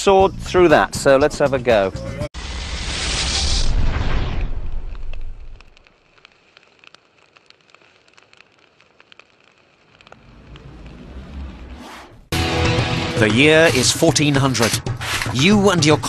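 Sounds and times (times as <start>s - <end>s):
low rumble: 2.4s - 5.8s, 9.8s - 13.8s
faint fire crackling: 2.4s - 12.3s
roaring flames: 2.4s - 12.8s.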